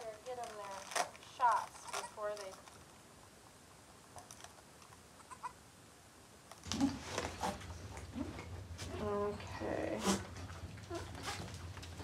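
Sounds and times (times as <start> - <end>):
goat calling: 5.2 - 5.6.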